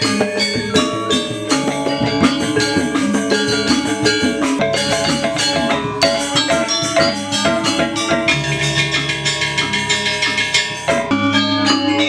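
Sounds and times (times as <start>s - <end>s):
gamelan metallophones ringing: 0.0s - 12.0s.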